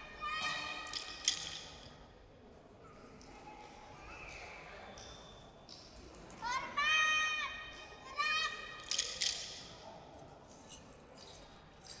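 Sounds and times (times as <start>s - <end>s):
faint murmur of voices in hall: 0.0s - 12.0s.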